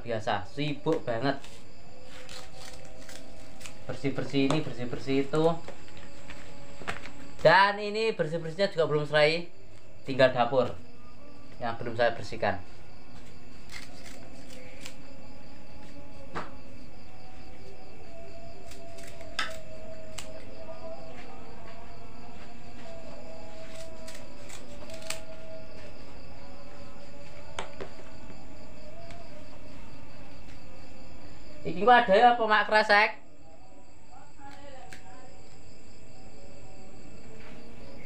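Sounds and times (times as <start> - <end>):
high insect trill: 0.0 - 38.0
banana leaves clicking and rustling: 2.1 - 4.8, 23.7 - 25.3.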